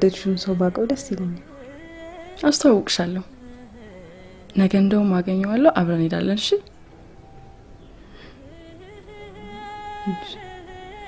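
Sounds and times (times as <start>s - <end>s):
woman speaking: 0.0s - 1.5s, 2.4s - 3.4s, 4.5s - 6.7s, 9.4s - 10.4s
faint droning tone: 0.0s - 11.0s.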